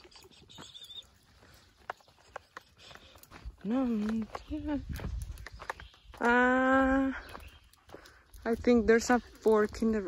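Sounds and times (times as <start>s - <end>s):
footsteps on dry leaves: 0.2s - 10.0s.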